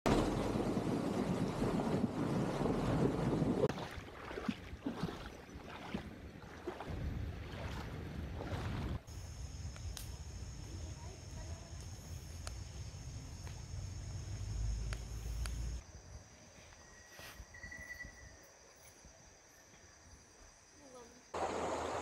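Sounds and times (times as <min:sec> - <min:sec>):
wind on microphone: 0:00.1 - 0:05.2
wheels splashing through water: 0:00.1 - 0:09.1
flowing water: 0:00.1 - 0:09.2, 0:21.4 - 0:22.0
insects chirring: 0:07.5 - 0:22.0.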